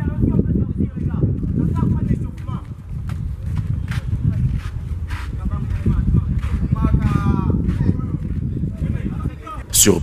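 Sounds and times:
indistinct background voices: 0:09.7 - 0:10.0.

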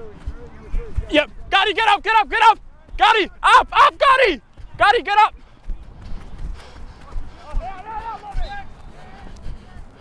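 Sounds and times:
distant man calling out: 0:01.5 - 0:05.3.

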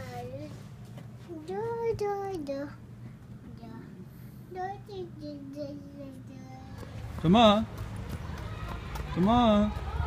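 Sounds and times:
child singing softly: 0:01.3 - 0:02.8, 0:03.5 - 0:06.9.

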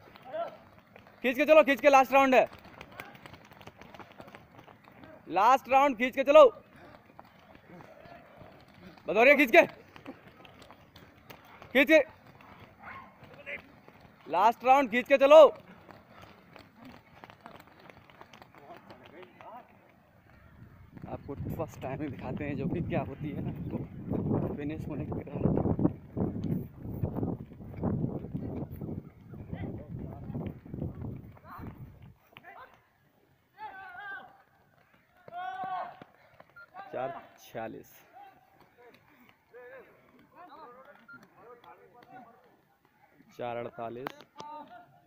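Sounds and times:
footsteps on dirt track: 0:00.0 - 0:45.0
man shouting: 0:35.3 - 0:36.0.

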